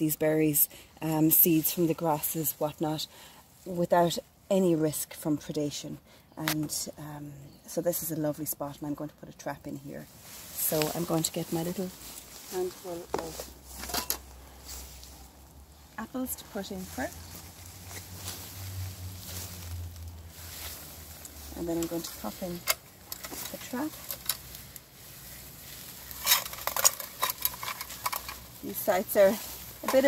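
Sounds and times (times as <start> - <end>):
faint low rumble: 14.3 - 26.2
rustles and clicks of gear: 19.2 - 30.0.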